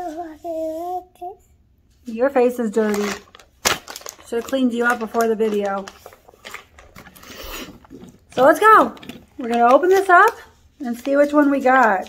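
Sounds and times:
plastic package crinkling: 2.8s - 12.0s.

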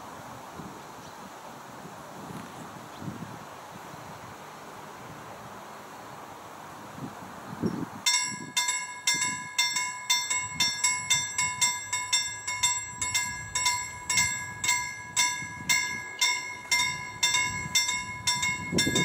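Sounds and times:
low train rumble: 3.3s - 19.0s
level crossing bell ringing: 8.1s - 19.0s.

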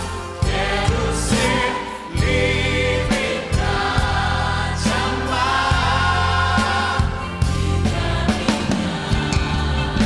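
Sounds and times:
worship band playing: 0.0s - 10.0s.

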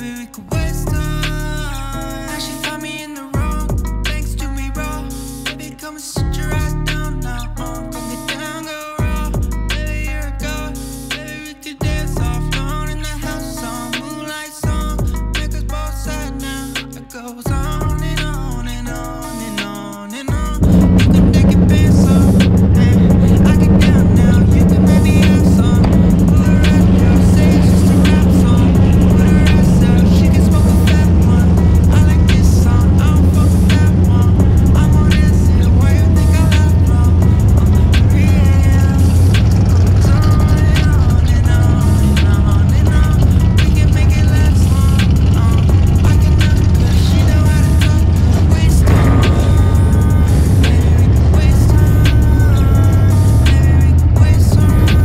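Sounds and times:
music playing: 0.0s - 55.0s
car engine running at low revs: 20.6s - 55.0s.

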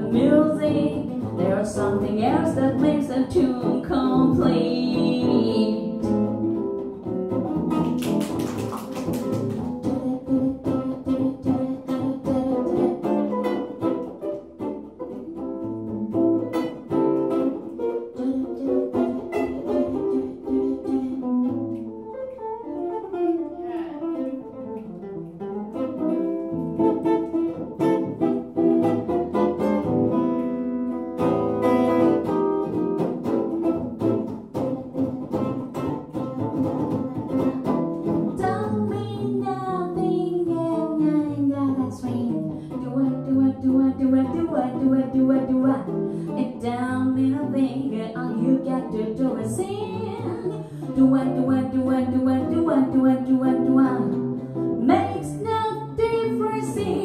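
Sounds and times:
electric guitar playing swing: 0.0s - 57.0s.

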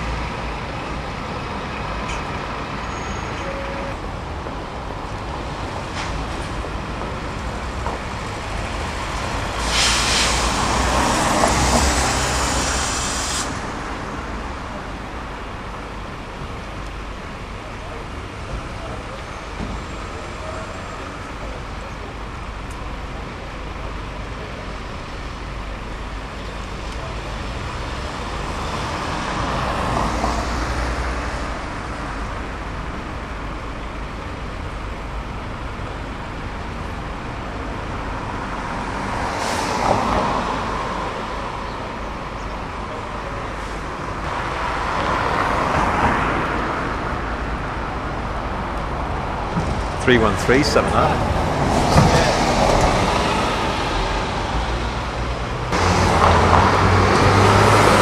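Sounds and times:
passing vehicles: 0.0s - 58.0s
bus engine idling: 12.1s - 28.6s.

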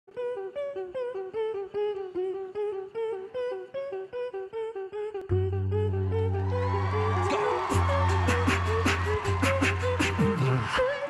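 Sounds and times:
beatboxing into microphone: 0.1s - 11.0s
deep bass tone: 5.3s - 10.4s.

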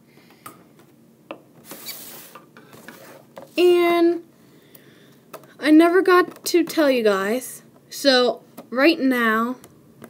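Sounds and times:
cardboard box scraping on table: 1.6s - 3.6s.

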